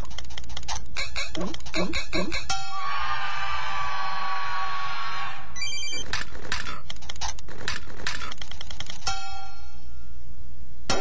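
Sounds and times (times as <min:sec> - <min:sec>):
mobile phone ringtone: 0:05.6 - 0:06.1.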